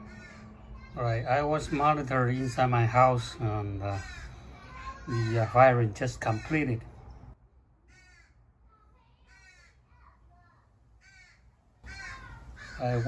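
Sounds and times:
faint crow caws: 0:00.0 - 0:07.2, 0:07.8 - 0:13.0.

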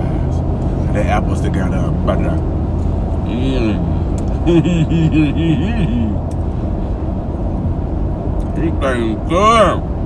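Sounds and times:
car cabin road rumble: 0:00.0 - 0:10.0
man humming: 0:03.2 - 0:06.3.

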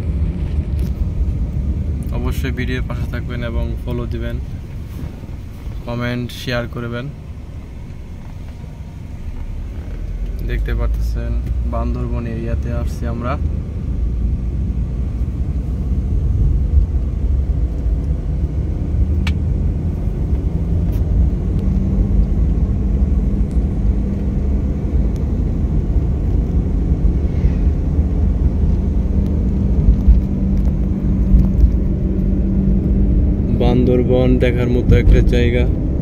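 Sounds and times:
car engine and tyre noise: 0:00.0 - 0:36.0.

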